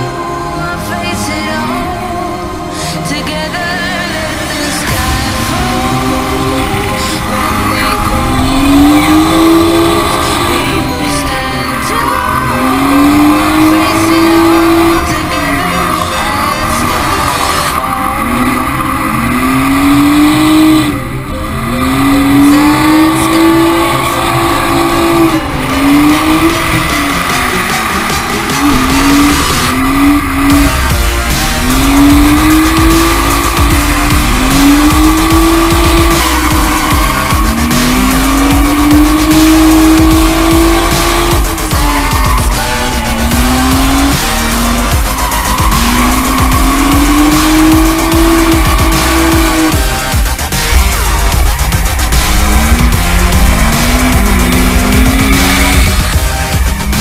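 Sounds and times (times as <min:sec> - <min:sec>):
car engine revving: 0:00.0 - 0:57.0
tyres squealing: 0:00.0 - 0:57.0.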